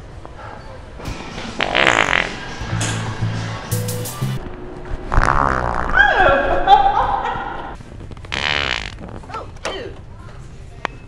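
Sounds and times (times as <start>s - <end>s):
squeaky fart toy noises: 5.1s - 6.3s, 8.3s - 9.3s.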